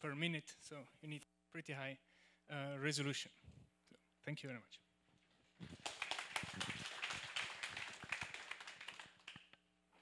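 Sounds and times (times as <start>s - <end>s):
audience applauding: 5.6s - 9.5s.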